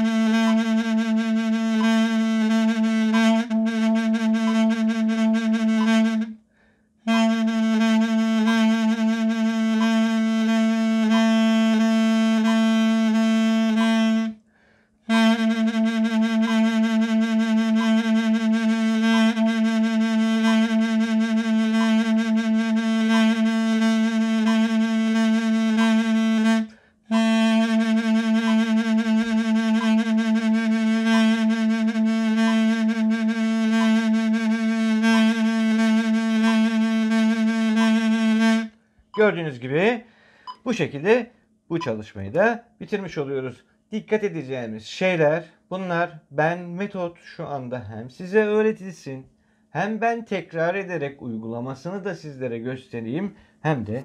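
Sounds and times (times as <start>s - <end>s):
double-reed wind instrument vibrato: 0.0s - 42.0s.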